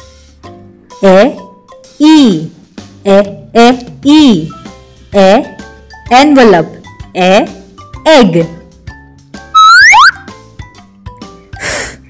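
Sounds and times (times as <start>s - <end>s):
soft background music: 0.0s - 12.0s
cartoon rising whistle: 9.5s - 10.3s.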